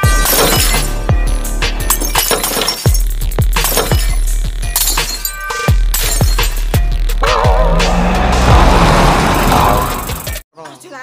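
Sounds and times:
glass shattering: 0.0s - 1.2s, 1.8s - 6.8s
electronic music with deep bass: 5.7s - 8.8s.

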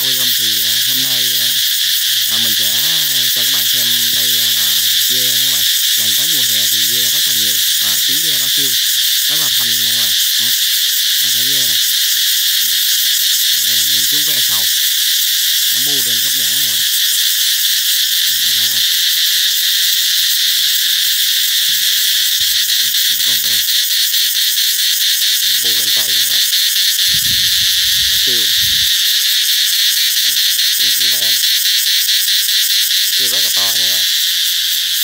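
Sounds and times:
cicadas buzzing: 0.0s - 35.0s.

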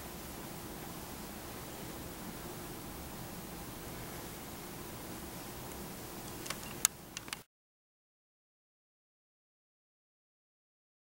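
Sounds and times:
steady hiss: 0.0s - 7.5s
sharp clicks: 5.7s - 7.5s.

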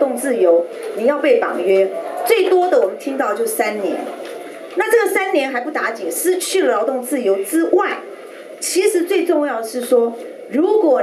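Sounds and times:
woman talking into microphone: 0.0s - 11.0s.

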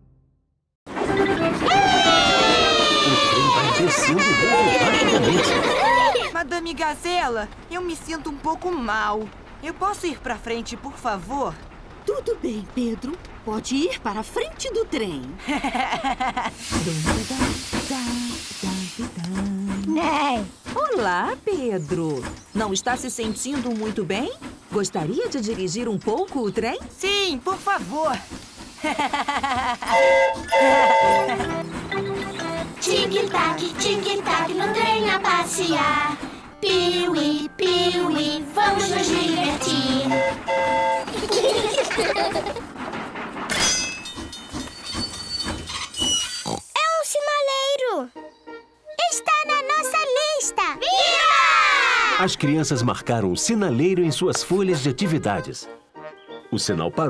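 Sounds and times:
steam locomotive hissing steam: 15.4s - 42.8s
high train whistle: 29.8s - 32.6s, 39.7s - 41.1s.

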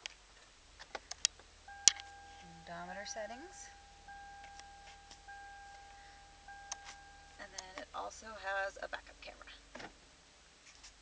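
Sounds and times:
car dashboard warning tone: 1.6s - 8.1s.

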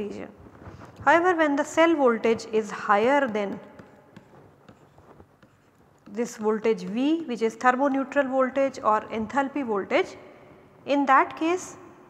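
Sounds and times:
stylus scratching on pen tablet: 3.0s - 7.2s.

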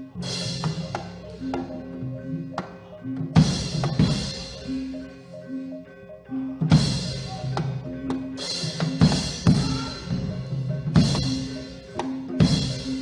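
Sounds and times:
drum strokes: 0.0s - 5.0s, 6.6s - 13.0s
ringing metallophone notes: 0.0s - 13.0s.

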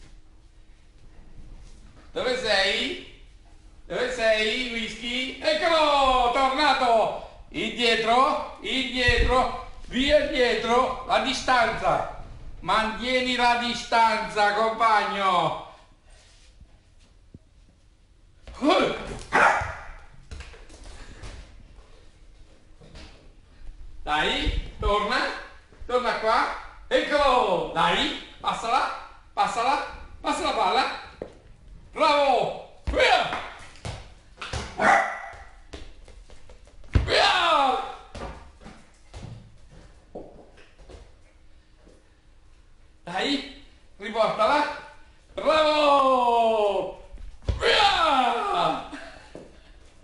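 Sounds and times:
dog barking: 19.3s - 20.0s, 34.8s - 35.5s.

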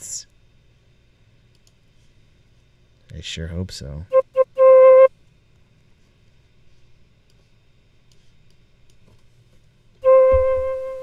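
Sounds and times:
faint low hum: 0.0s - 11.0s
flute keyboard note: 4.1s - 5.1s, 10.0s - 11.0s.

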